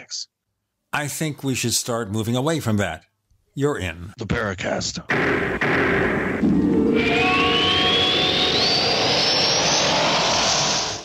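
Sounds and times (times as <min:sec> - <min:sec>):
jet-like whoosh: 0:05.1 - 0:11.0
thin whistle rising in pitch: 0:06.7 - 0:11.0.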